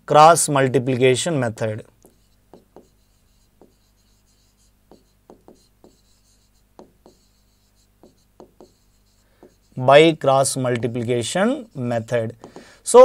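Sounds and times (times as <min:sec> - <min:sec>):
marker pen writing on board: 0:00.6 - 0:12.8.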